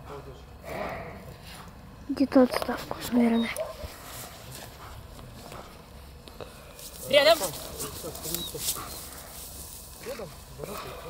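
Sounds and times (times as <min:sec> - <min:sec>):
low voices: 0:00.0 - 0:11.0
dog whining: 0:03.2 - 0:03.7.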